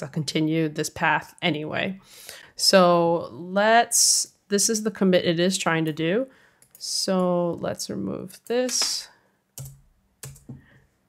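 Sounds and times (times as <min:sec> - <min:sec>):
computer keyboard keystrokes: 0:09.6 - 0:10.6.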